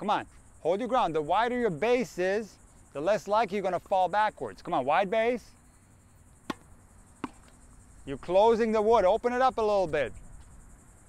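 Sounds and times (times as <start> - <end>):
ball knocking wooden board: 6.5 - 7.5
tennis racket hitting ball: 6.5 - 7.5.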